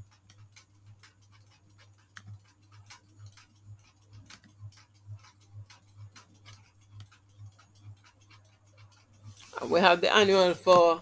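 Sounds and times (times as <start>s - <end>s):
faint regular ticking: 0.0s - 11.0s
low steady hum: 0.0s - 11.0s.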